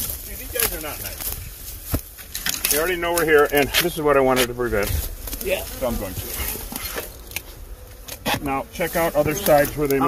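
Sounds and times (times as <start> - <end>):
rustling in dry grass: 0.0 - 10.0
man speaking: 2.7 - 5.0, 5.8 - 6.6, 8.4 - 10.0.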